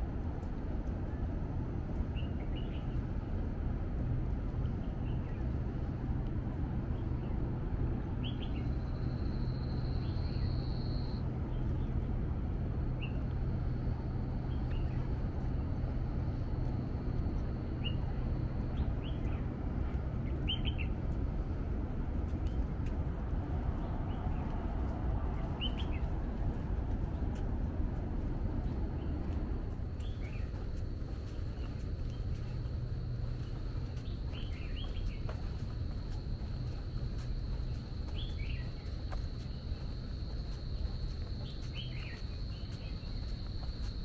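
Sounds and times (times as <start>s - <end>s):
low rumble and hum: 0.0s - 44.0s.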